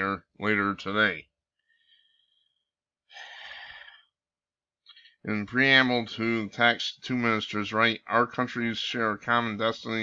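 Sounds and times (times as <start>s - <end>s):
man breathing: 1.6s - 5.3s.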